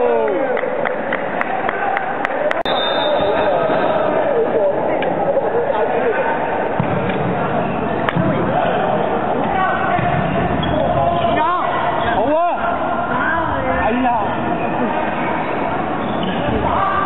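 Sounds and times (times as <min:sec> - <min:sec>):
people shouting: 0:16.5 - 0:17.0.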